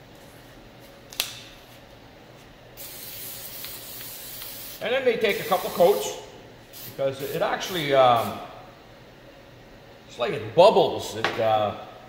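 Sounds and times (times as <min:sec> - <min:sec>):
aerosol can spraying hiss: 0:02.8 - 0:06.1.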